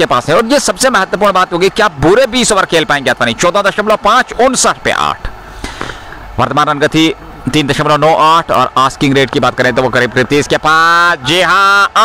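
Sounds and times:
man giving sports commentary: 0.0s - 5.4s, 6.2s - 12.0s
faint background noise: 0.0s - 12.0s.

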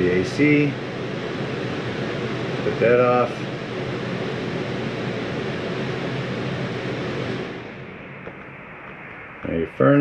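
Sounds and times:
air conditioner running: 0.0s - 10.0s.

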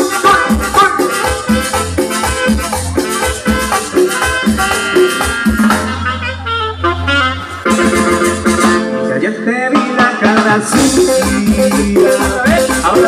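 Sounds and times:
saxophone: 0.0s - 9.2s
cumbia band playing: 0.0s - 13.0s.

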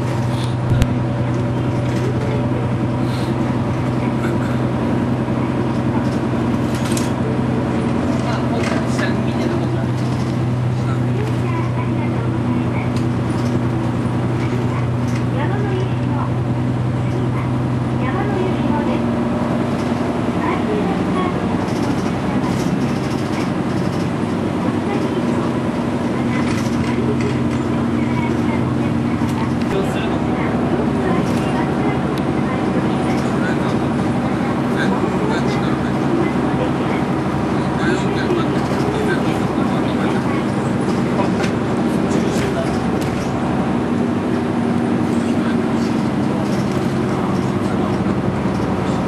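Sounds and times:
bus diesel engine drone: 0.0s - 49.0s
road and tyre noise: 0.0s - 49.0s.

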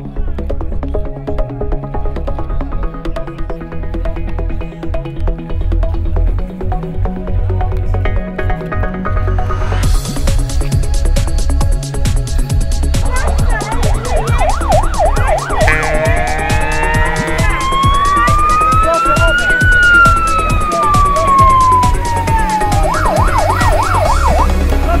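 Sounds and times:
electronic music beat: 9.8s - 25.0s
emergency vehicle siren: 13.2s - 24.6s.

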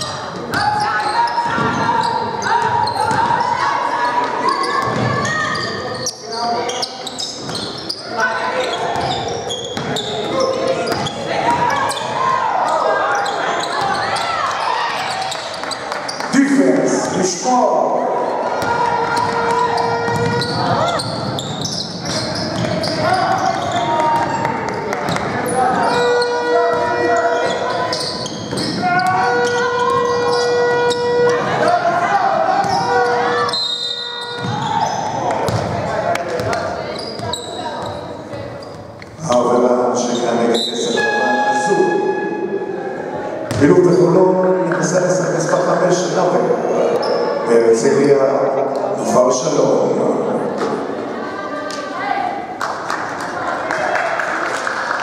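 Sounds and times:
echoing voices: 0.0s - 55.0s.

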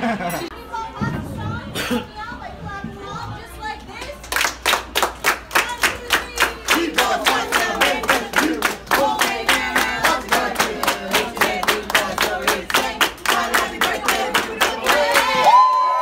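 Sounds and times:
voices: 0.2s - 4.6s, 5.3s - 15.5s
people clapping in unison: 4.0s - 16.0s.

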